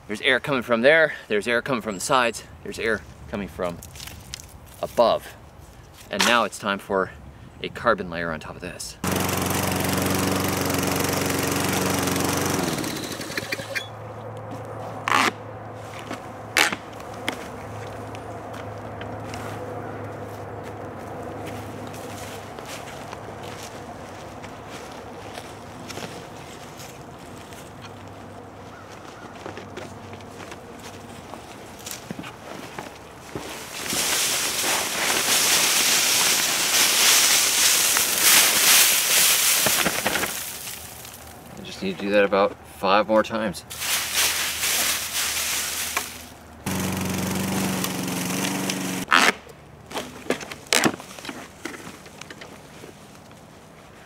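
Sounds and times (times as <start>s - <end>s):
lawn mower running: 9.0s - 14.0s, 45.8s - 49.1s
leaves dumped with rustling rush: 33.4s - 41.3s, 43.7s - 49.1s.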